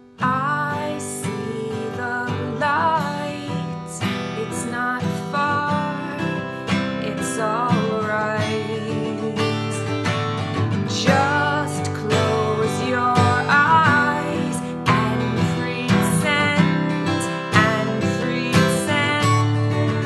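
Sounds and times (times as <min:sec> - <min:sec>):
strummed acoustic guitar: 0:00.0 - 0:20.0
woman singing with vibrato: 0:00.2 - 0:10.0, 0:10.9 - 0:20.0.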